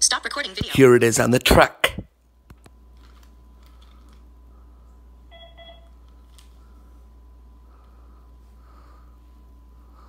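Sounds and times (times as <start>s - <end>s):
low steady hum: 0.0s - 10.0s
electronic keypad beep: 5.3s - 5.9s.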